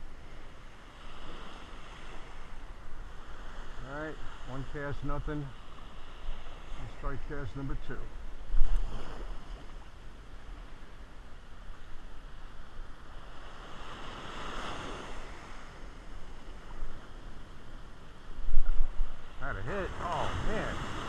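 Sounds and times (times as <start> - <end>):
surf washing up sandy beach: 0.0 - 21.0
wind rumble on microphone: 8.2 - 10.9, 11.7 - 19.4.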